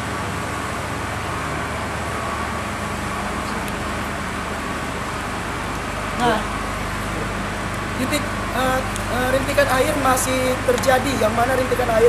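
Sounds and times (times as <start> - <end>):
street traffic engines humming: 0.0 - 12.0.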